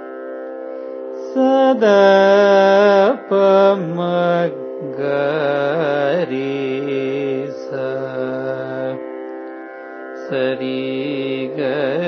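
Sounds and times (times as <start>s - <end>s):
man singing ornamented notes: 1.2s - 9.1s, 10.2s - 12.0s.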